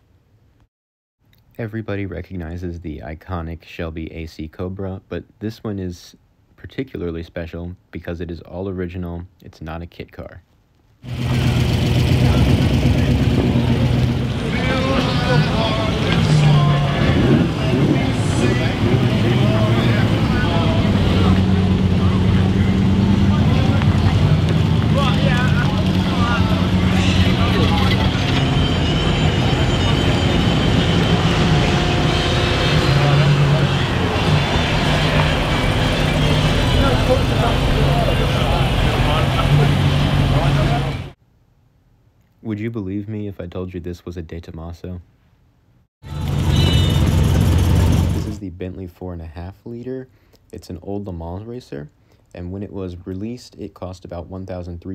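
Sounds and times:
people talking: 1.6s - 10.4s, 12.0s - 41.2s, 42.4s - 45.0s, 48.1s - 54.9s
sports car engines driving slowly: 11.1s - 41.2s, 46.1s - 48.4s.

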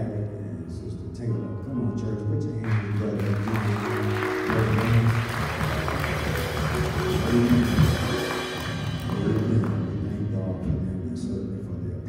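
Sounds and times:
church music with keyboard and drums: 0.0s - 12.0s.

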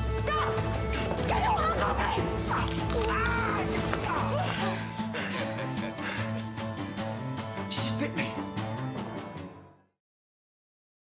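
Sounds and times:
background music with sustained notes: 0.0s - 10.0s.

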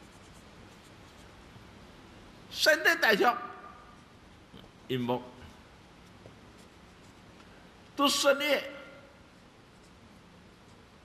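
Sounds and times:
pen scratching on paper: 0.0s - 1.3s.

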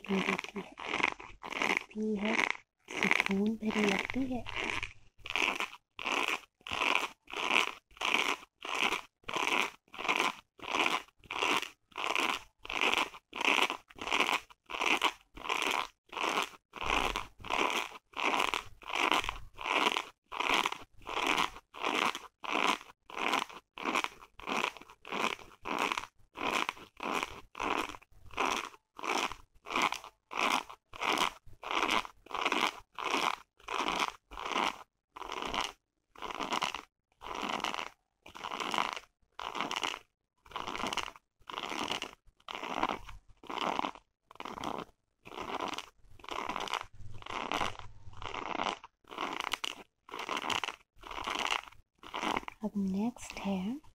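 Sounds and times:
fingernails scratching fabric: 0.0s - 52.6s.

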